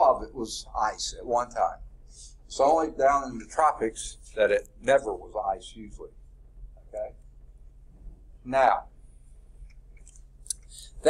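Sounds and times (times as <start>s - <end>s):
low steady room hum: 0.0s - 11.0s.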